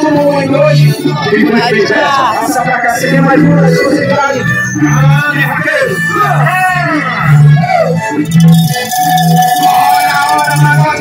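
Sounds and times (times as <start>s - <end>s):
repeated bass notes: 0.0s - 11.0s.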